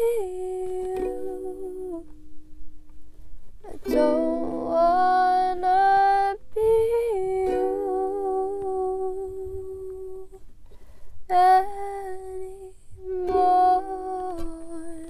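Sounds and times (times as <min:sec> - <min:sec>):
woman humming: 0:00.0 - 0:02.1, 0:03.6 - 0:10.4, 0:11.3 - 0:15.0
ukulele: 0:00.0 - 0:03.0, 0:03.6 - 0:10.4, 0:11.3 - 0:15.0.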